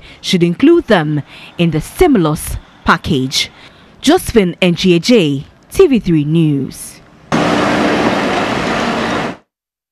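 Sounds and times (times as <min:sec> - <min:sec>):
trucks driving past: 0:07.3 - 0:09.5.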